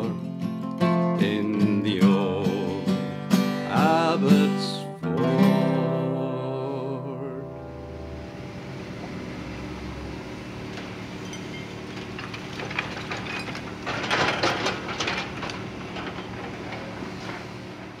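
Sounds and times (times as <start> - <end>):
excavator diesel engine: 7.4 - 18.0
rubble crashing and clattering: 10.4 - 18.0
falling debris knocks: 10.7 - 17.8.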